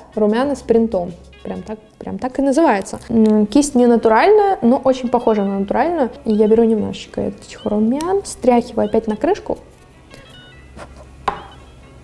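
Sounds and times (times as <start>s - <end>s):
faint music: 0.0s - 12.0s
makeup brush tapping compact lid: 11.3s - 11.6s.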